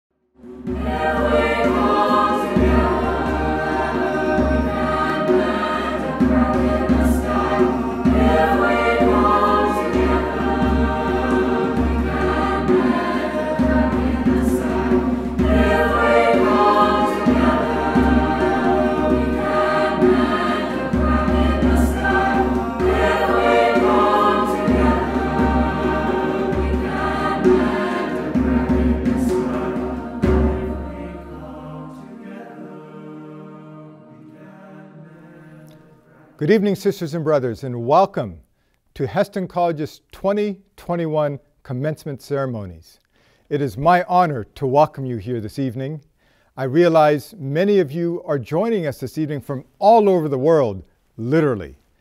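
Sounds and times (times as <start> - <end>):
choir singing: 0.4 - 36.6.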